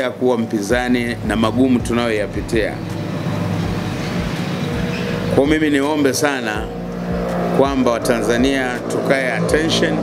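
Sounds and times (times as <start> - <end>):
passing vehicle engine and tyres: 0.0 - 10.0
low hum: 0.7 - 10.0.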